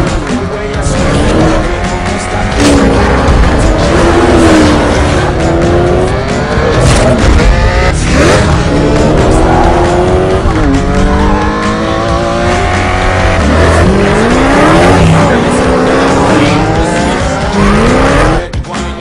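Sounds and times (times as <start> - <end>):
car engines accelerating hard: 0.0 - 19.0.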